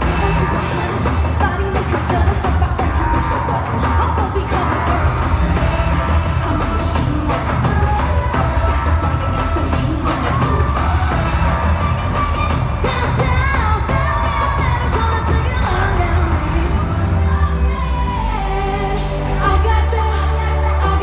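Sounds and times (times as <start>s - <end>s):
loud pop music with heavy bass: 0.0s - 21.0s
person singing: 0.0s - 21.0s.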